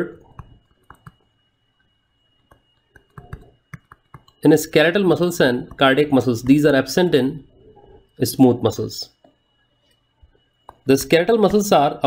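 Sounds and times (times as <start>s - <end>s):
thin high-pitched whine: 0.0s - 12.0s
stylus tapping on drawing tablet: 0.3s - 1.2s, 2.4s - 4.4s, 5.6s - 6.6s.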